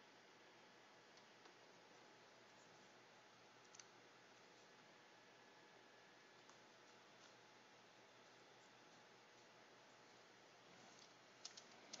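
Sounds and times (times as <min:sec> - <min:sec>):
faint room hiss: 0:00.0 - 0:12.0
small sharp clicks: 0:03.6 - 0:04.0, 0:11.0 - 0:12.0.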